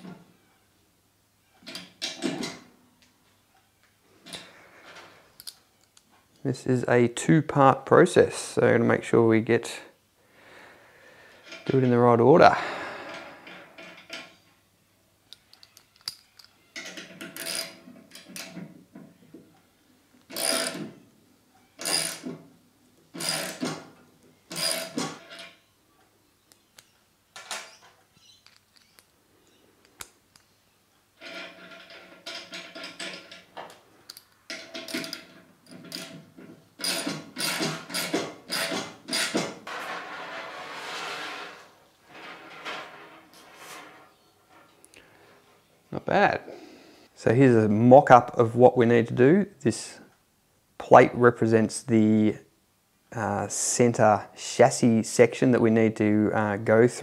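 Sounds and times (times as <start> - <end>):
ratchet wrench ratcheting: 20.4 - 20.8, 21.8 - 22.2, 23.2 - 23.6, 24.5 - 25.5, 36.8 - 39.4.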